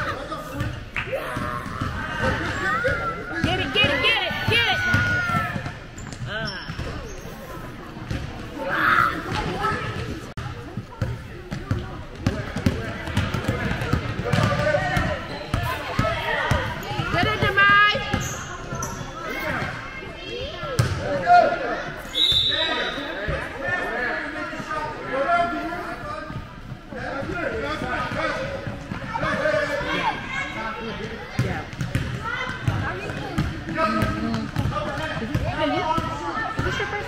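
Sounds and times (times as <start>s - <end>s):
basketball bouncing on hardwood: 11.0s - 15.1s, 31.4s - 35.4s.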